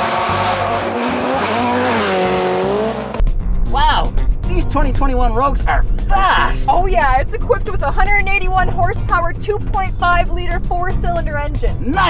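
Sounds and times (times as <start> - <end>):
rally car engine at high revs: 0.0 - 3.2.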